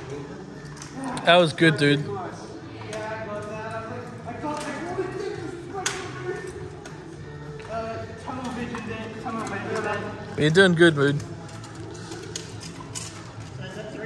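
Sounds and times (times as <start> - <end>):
armour clinking: 8.3 - 14.0.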